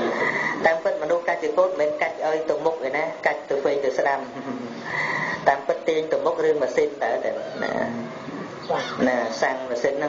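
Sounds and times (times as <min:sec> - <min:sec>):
man preaching: 0:05.4 - 0:10.0.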